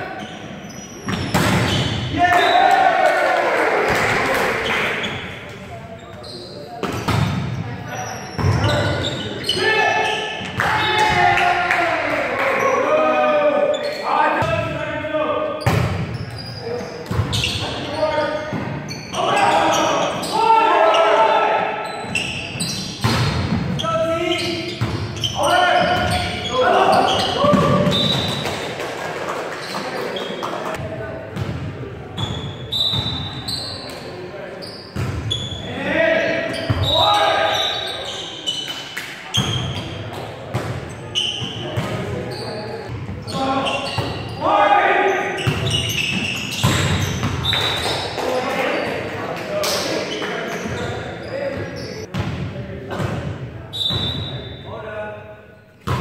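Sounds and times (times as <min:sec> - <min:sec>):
people calling out and chattering: 0:00.0 - 0:55.6.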